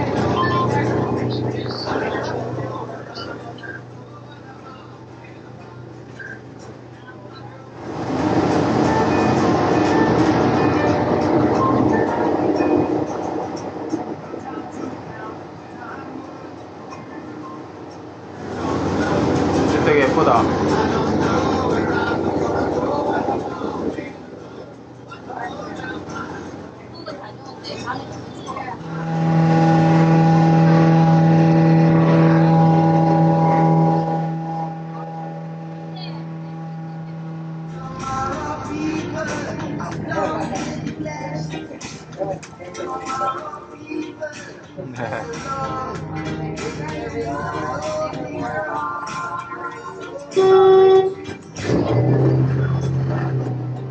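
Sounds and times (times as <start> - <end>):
boat motor rumble: 0.0 - 42.6, 44.8 - 53.9.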